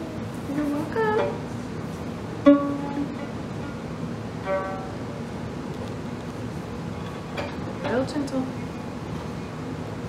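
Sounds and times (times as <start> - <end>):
violin strings plucked: 2.4 - 3.8, 4.4 - 5.2.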